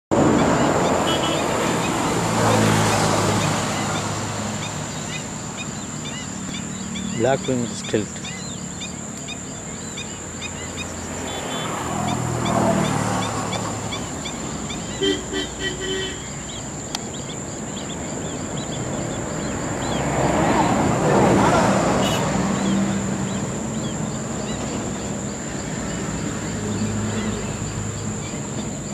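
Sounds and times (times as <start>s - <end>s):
birds calling: 0.1s - 28.9s
distant traffic rumble: 0.1s - 28.9s.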